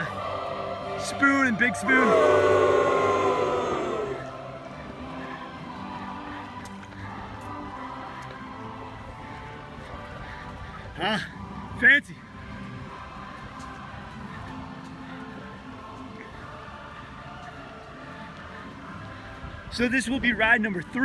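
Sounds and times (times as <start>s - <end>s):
loud vocal calls: 0.0s - 4.7s
faint music: 0.0s - 21.0s.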